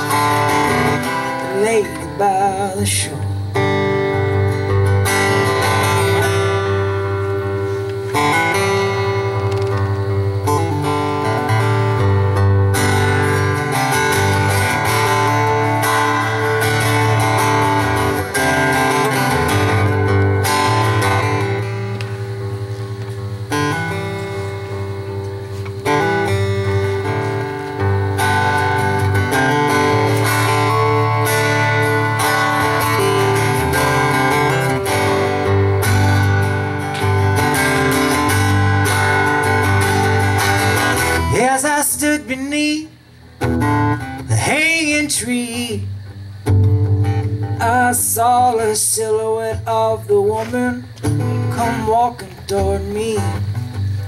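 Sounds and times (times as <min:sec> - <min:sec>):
acoustic guitar strumming: 0:00.0 - 0:54.0.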